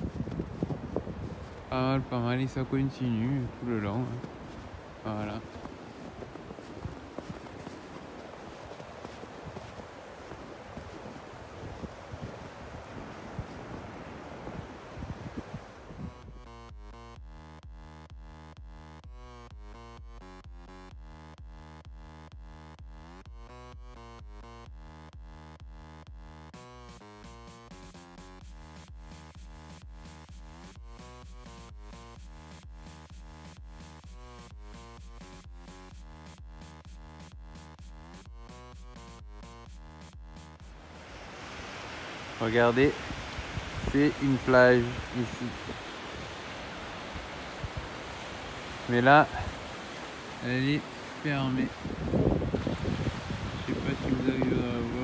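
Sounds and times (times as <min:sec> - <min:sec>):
wind on microphone: 0:00.0 - 0:16.4, 0:41.0 - 0:55.0
electronic music with steady beat: 0:16.2 - 0:41.0.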